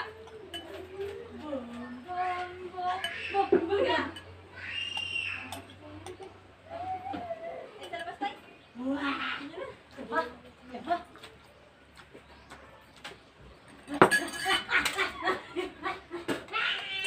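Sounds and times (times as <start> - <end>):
voices talking: 0.0 - 17.0
metal spoon clinking on ceramic bowl: 0.1 - 1.0, 7.8 - 8.2, 14.0 - 15.0.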